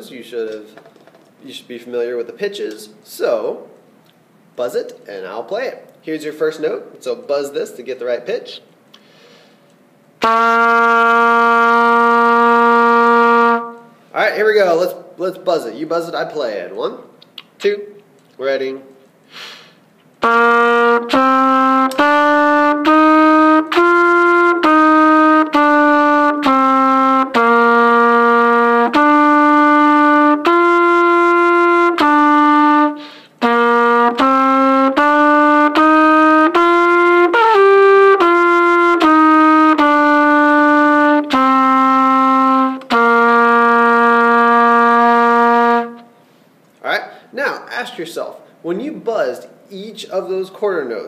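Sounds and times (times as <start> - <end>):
trumpet playing slow notes: 10.2 - 14.0, 20.2 - 46.2.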